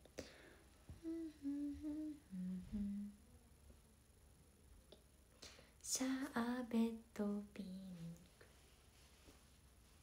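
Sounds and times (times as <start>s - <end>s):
woman humming a tune: 0.9s - 3.3s.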